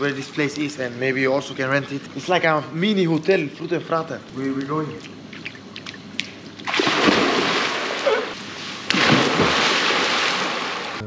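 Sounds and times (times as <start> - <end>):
water churning: 0.0 - 11.0
people splashing into pool: 6.6 - 11.0.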